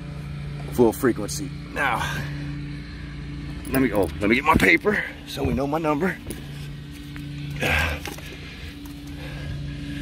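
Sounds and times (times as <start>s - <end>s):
car engine idling hum: 0.0s - 10.0s.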